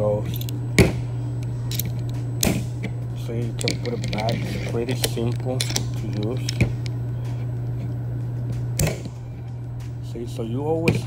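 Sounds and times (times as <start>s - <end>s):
steady low hum: 0.0s - 11.0s
screwdriver metal parts clicking: 0.3s - 0.6s, 1.7s - 2.2s, 3.5s - 7.0s.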